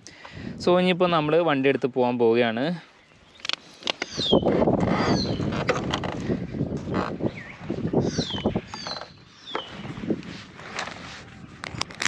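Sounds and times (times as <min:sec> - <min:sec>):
helmet rustling and clicking: 0:03.3 - 0:07.6, 0:08.3 - 0:12.0
bird whistling call: 0:07.4 - 0:09.8.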